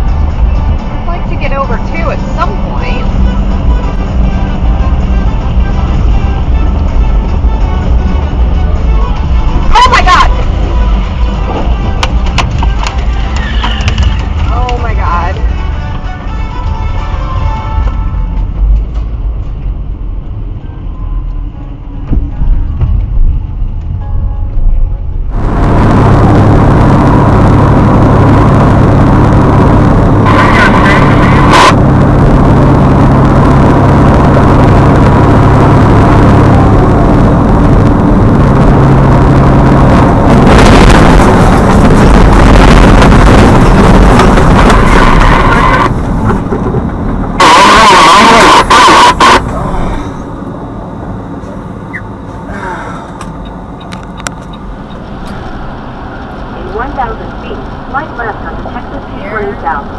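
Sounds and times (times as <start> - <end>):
horn blasts: 0.0 - 18.8, 23.9 - 38.6, 39.5 - 50.4
highway engine and road noise: 0.0 - 59.9.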